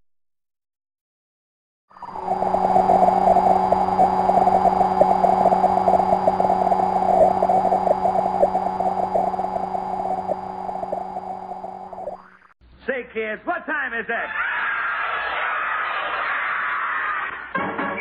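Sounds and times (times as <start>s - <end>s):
electronic hum with overtone: 1.9s - 12.5s
static crackle: 1.9s - 12.5s.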